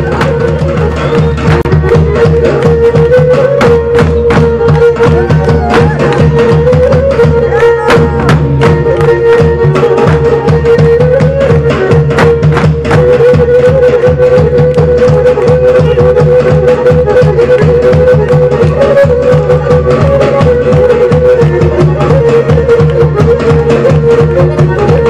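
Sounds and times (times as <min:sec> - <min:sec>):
driving drum beat: 0:00.0 - 0:25.0
ornamented folk melody: 0:00.0 - 0:25.0.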